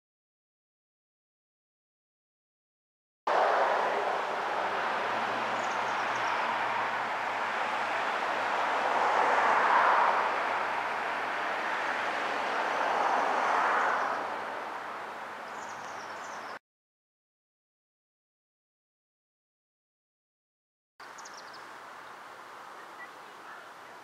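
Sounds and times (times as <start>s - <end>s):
road traffic rushing: 3.3s - 16.6s
faint bird chirps: 21.0s - 21.7s, 22.6s - 24.0s.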